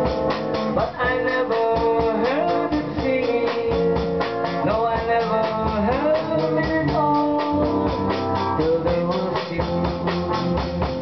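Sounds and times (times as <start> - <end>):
drum kit beat: 0.0 - 11.0
electric guitar melody: 0.0 - 11.0.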